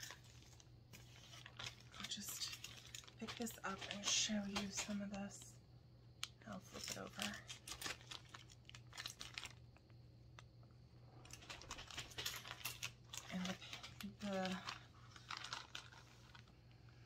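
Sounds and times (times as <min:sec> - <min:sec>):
plastic bag crinkling: 0:00.0 - 0:05.5, 0:06.6 - 0:09.9, 0:11.2 - 0:16.7.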